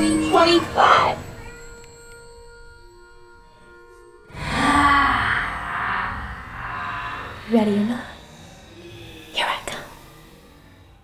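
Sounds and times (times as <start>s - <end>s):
breathy whisper: 4.3s - 10.0s.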